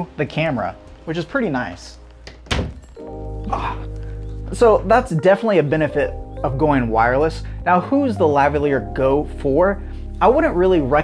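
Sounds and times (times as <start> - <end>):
background music low chord: 0.0 - 11.0.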